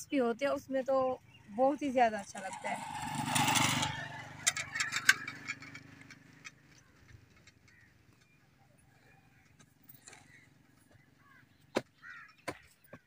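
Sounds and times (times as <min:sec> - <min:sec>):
motorcycle engine hum: 0:00.1 - 0:13.0.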